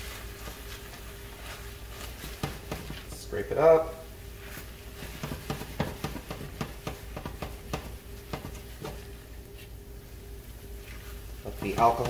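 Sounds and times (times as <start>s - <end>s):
wooden spoon scraping a pan: 0.0s - 3.3s
faint steady hum: 0.0s - 12.0s.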